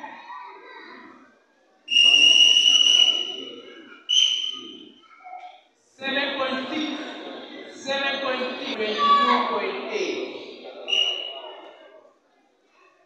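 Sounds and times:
referee's whistle blasts: 0:01.9 - 0:05.0, 0:10.9 - 0:11.6.

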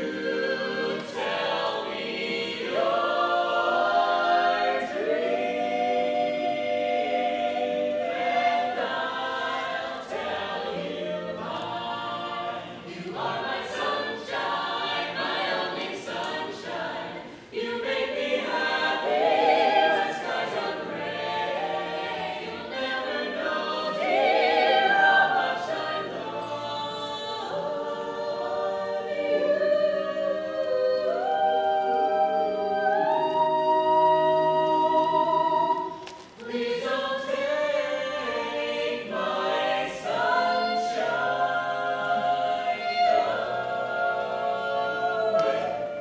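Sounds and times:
choir singing in close harmony: 0:00.0 - 0:46.0.

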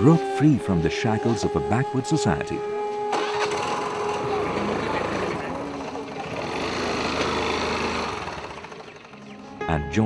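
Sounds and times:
motor scooter engine pulling away: 0:03.0 - 0:09.6.

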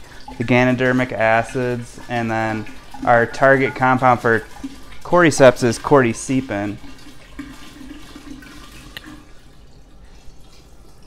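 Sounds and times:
liquid pouring into glass jar: 0:00.0 - 0:11.0.

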